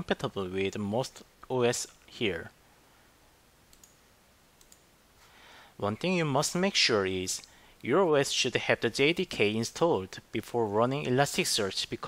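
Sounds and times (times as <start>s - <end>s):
faint clicks: 3.7s - 4.0s, 4.6s - 4.9s.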